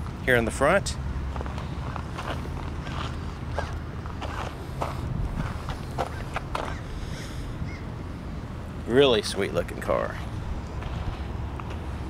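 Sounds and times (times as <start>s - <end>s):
low steady rumble: 0.0s - 12.0s
footsteps on gravel: 1.3s - 6.8s, 10.8s - 11.9s.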